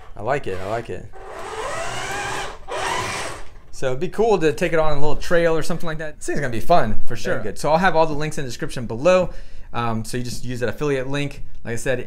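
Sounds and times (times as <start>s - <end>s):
toy tank motor and gears whining: 0.0s - 3.5s.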